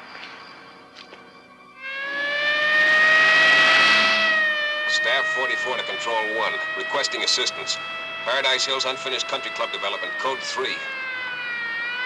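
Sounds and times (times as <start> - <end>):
police car siren wailing: 1.2 - 12.0.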